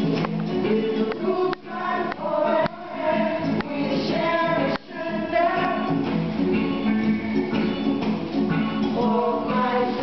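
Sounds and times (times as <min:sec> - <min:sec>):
group singing with instruments: 0:00.0 - 0:10.0.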